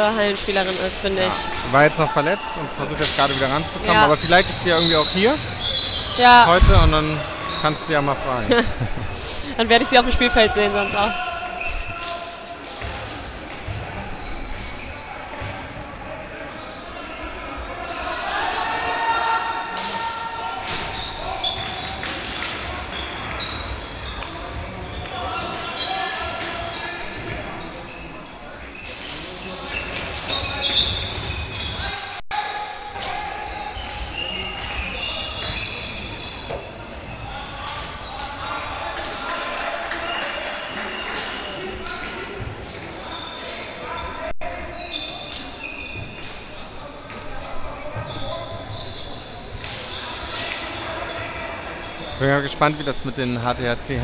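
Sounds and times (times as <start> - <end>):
shoes squeaking on floor: 0.0 - 12.1, 12.8 - 16.0, 20.7 - 32.0, 33.4 - 39.0, 42.6 - 53.5
players calling out: 0.0 - 14.4.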